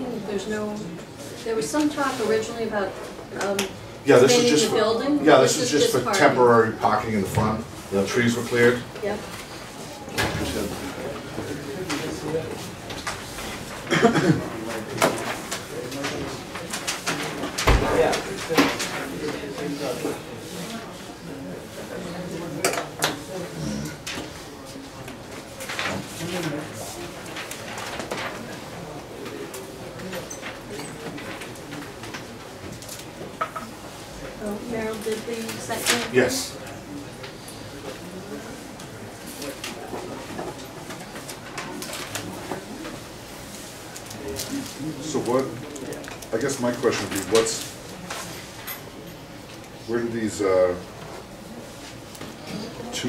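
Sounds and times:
low murmured voices: 7.2s - 53.0s
paper sheets rustling: 8.0s - 21.0s, 24.1s - 34.1s, 38.3s - 48.7s.

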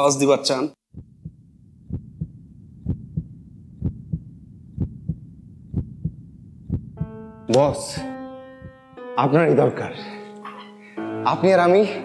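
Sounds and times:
heartbeat double thump: 0.9s - 7.2s, 8.6s - 8.8s.

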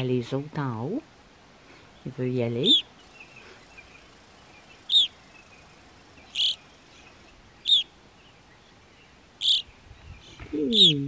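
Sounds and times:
bird call notes: 2.6s - 11.0s.

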